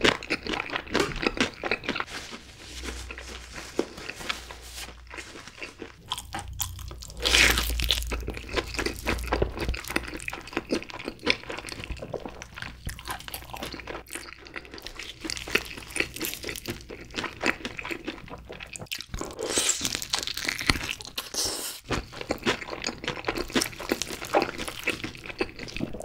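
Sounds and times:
chewing crunches: 0.0s - 26.0s.

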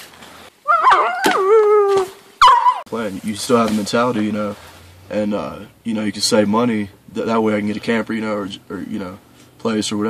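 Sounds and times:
dog howling: 0.6s - 2.9s.

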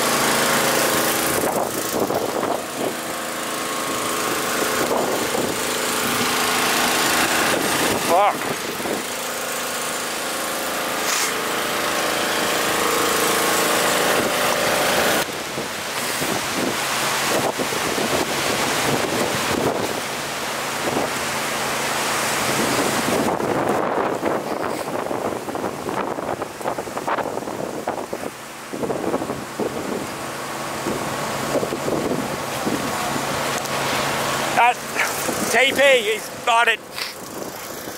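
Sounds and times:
small engine running: 0.0s - 24.9s, 29.7s - 37.9s
rush of flame and wind: 0.0s - 37.9s.

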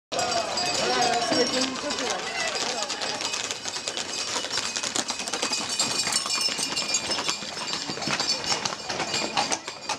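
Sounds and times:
horse hooves clattering on asphalt: 0.1s - 9.9s.

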